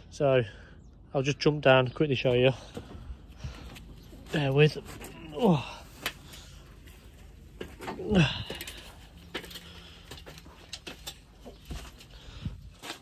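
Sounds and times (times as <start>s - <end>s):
boots on metal ladder rungs: 7.1s - 13.0s.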